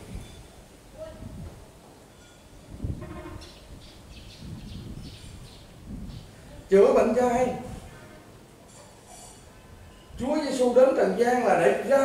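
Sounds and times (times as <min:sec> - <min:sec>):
small bird chirping: 0:03.4 - 0:06.4.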